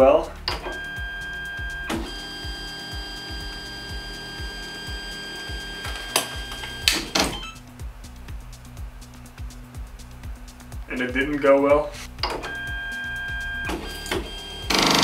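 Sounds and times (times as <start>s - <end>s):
low steady hum: 0.0s - 15.0s
stepper motors whining: 0.5s - 7.6s, 12.2s - 15.0s.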